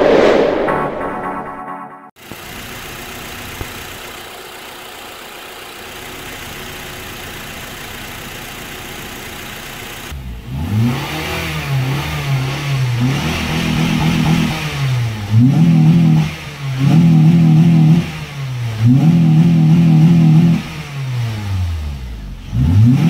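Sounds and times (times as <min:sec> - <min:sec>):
logo whoosh: 0:00.0 - 0:01.8
car engine idling and revving: 0:02.2 - 0:23.0.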